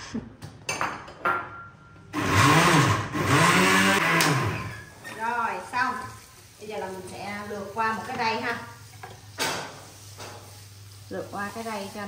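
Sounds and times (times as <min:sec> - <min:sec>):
blender motor running: 0:02.1 - 0:05.0.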